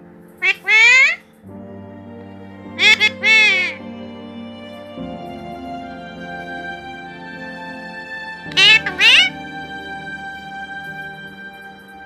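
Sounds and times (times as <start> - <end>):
background music: 0.0 - 12.0
parakeet calling loudly: 0.4 - 1.2, 2.8 - 3.8, 8.5 - 9.3.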